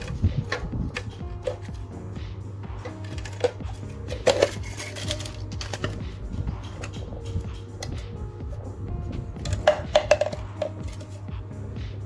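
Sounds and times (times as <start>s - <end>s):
background music: 0.0s - 12.0s
plastic bottle clicking and crackling: 2.8s - 8.0s, 9.4s - 11.1s.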